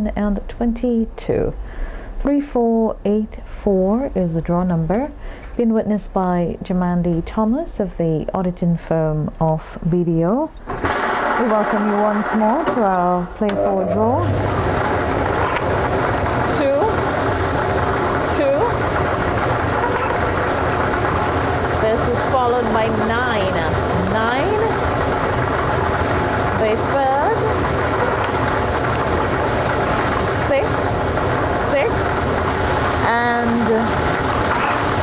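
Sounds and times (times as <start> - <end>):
rushing whir of blowers: 10.7 - 35.0.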